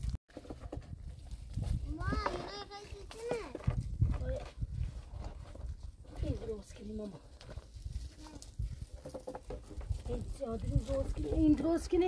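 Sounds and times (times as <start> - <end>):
dry branches dragged over ground: 0.0 - 12.0.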